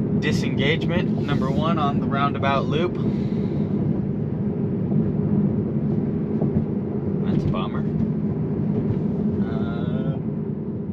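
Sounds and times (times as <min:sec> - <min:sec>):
road and tyre rumble in car cabin: 0:00.0 - 0:10.9.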